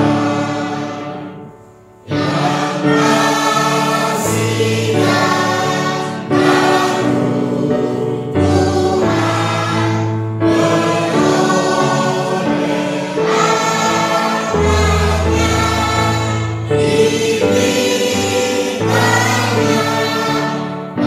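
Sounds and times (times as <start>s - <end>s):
choir singing a hymn: 0.0s - 21.0s.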